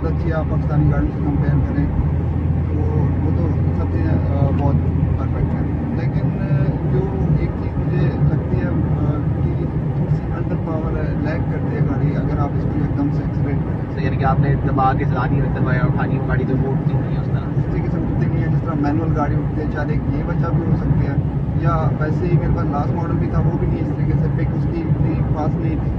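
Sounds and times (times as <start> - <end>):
people talking: 0.0 - 1.9, 2.7 - 25.9
car engine and tyre drone: 0.0 - 25.9.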